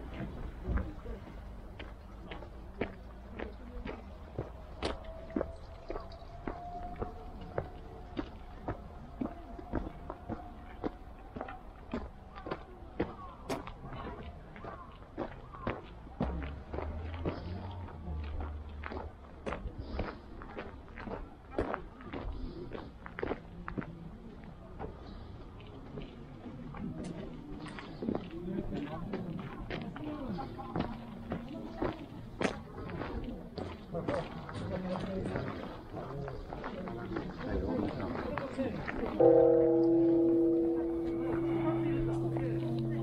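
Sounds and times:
footsteps on gravel path: 0.0 - 26.2, 26.8 - 43.0
faint voices: 0.0 - 43.0.

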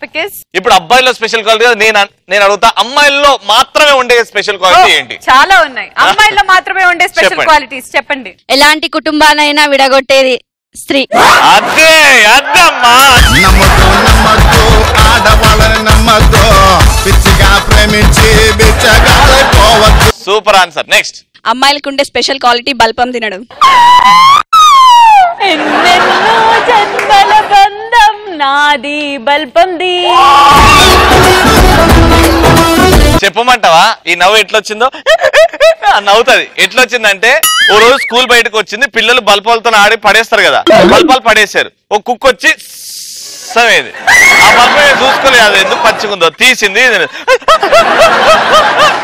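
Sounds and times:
person laughing: 35.1 - 35.8, 40.7 - 41.2.

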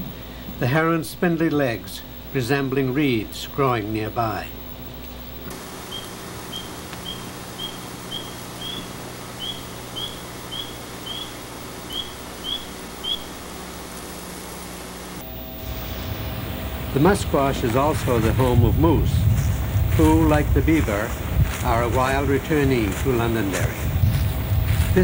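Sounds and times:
steady hum and hiss: 0.0 - 25.0
tree frogs peeping: 1.5 - 25.0.

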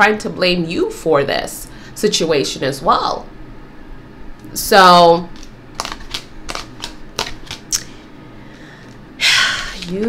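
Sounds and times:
cards clicking and tapping: 5.4 - 7.9.

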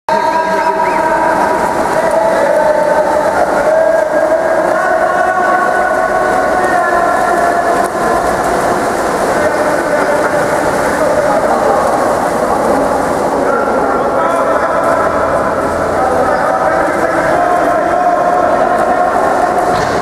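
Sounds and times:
voices calling: 0.1 - 19.8
players splashing: 0.1 - 20.0
sustained tones: 0.2 - 20.0.

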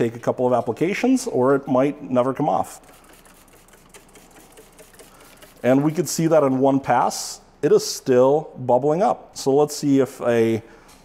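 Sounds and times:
hand rubbing glossy panel: 2.4 - 6.6.

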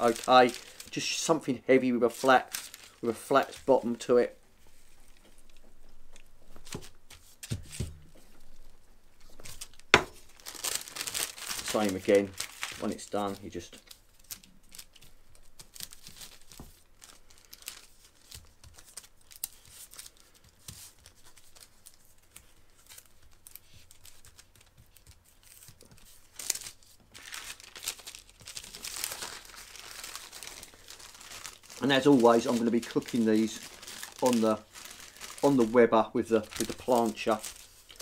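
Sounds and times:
parchment paper crinkling: 0.0 - 38.0.

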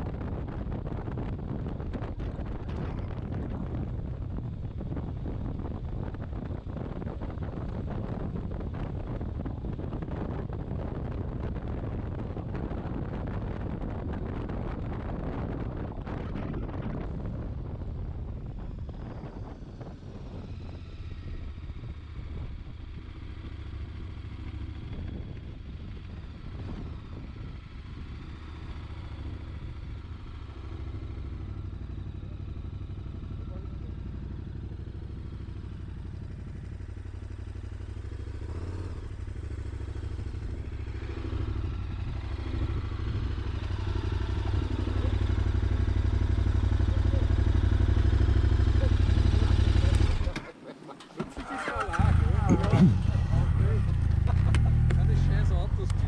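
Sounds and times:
motorcycle engine low rumble: 0.0 - 56.0.

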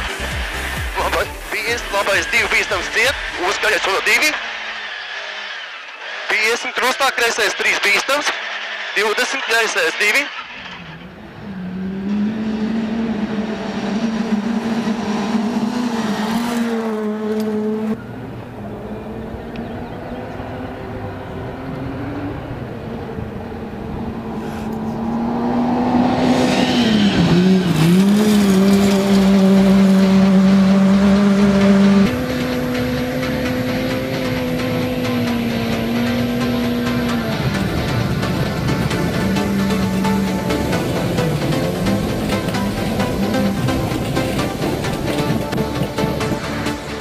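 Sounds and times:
rally car engine at high revs: 0.0 - 47.0.

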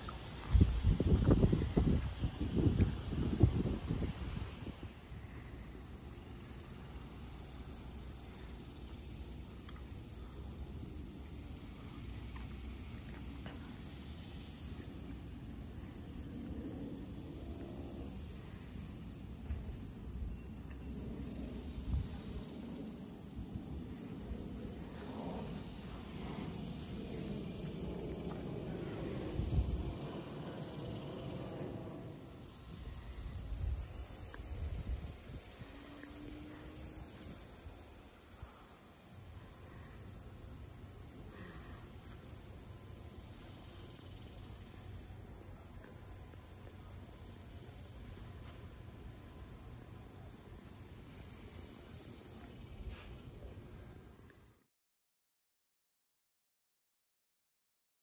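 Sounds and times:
wind buffeting microphone: 0.1 - 5.5, 23.4 - 38.0.

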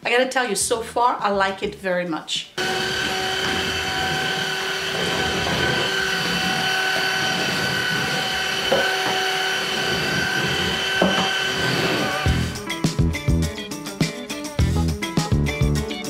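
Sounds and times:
stick vacuum running: 2.6 - 12.6.

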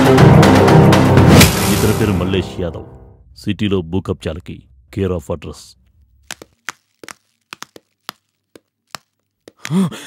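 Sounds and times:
footsteps on hard floor: 6.3 - 9.7
man groaning in pain: 9.7 - 10.0.

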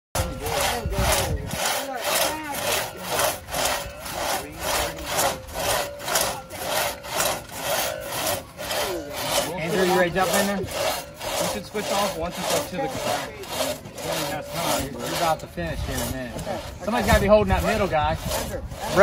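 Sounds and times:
crosscut saw rasping through log: 0.2 - 19.0.

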